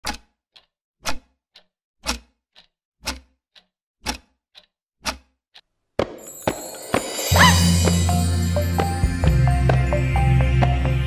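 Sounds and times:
clock ticking: 0.0s - 10.7s.

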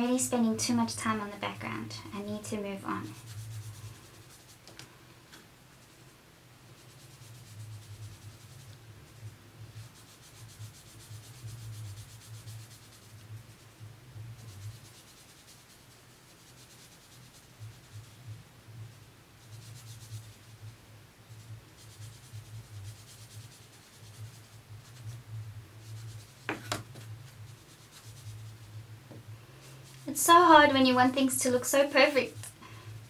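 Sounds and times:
scratchy strokes on paper: 0.0s - 33.0s.

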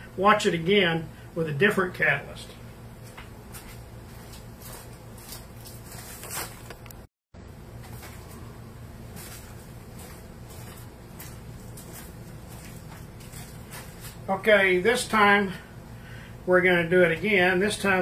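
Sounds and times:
low hum: 6.8s - 14.9s.

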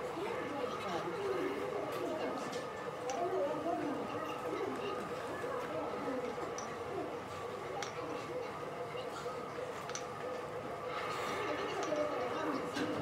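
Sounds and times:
background voices chattering: 0.0s - 13.0s.

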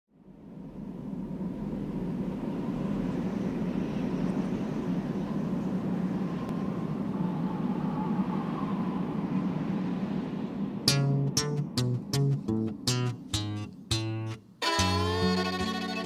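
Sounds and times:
steady low rumble: 0.1s - 14.6s.

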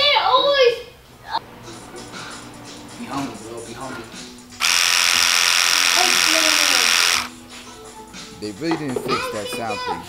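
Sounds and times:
electric hair clipper buzzing: 4.6s - 7.3s.

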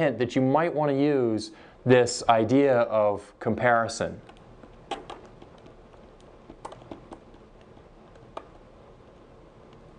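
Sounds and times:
low hiss: 0.0s - 9.9s
stylus tapping on tablet: 4.2s - 9.9s.

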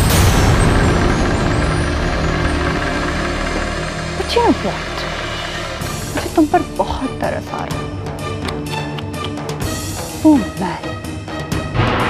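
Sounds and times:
low rumbling drone: 0.0s - 12.0s.

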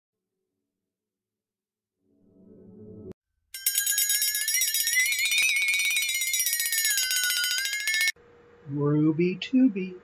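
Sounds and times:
pulsing alarm bell ringing: 3.6s - 8.2s.

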